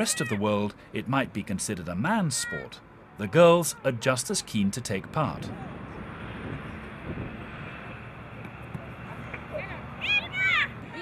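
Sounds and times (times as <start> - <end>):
outdoor background rush: 0.0 - 11.0.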